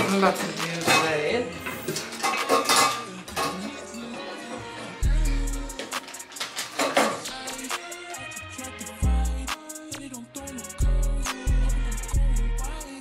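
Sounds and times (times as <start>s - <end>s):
toiletries and metal tray clinking: 0.0s - 5.1s, 5.7s - 7.6s
background music: 0.0s - 13.0s.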